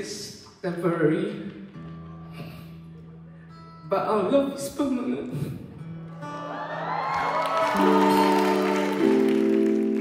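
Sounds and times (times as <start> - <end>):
audience cheering and applause: 6.3 - 10.0.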